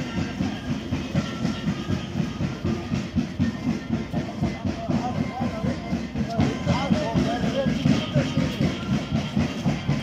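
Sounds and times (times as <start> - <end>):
fast steady drum beat: 0.0 - 10.0.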